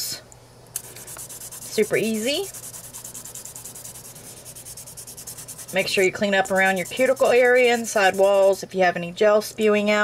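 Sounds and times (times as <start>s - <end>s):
nail buffer scratching on nails: 0.8s - 8.6s.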